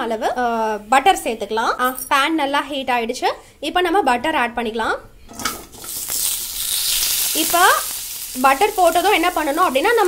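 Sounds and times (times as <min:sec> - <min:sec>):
butter sizzling in a hot pan: 0:05.5 - 0:10.0.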